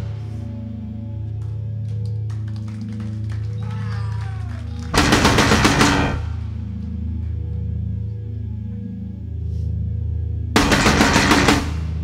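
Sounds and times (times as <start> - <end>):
rapid drum strikes: 5.0 - 6.4.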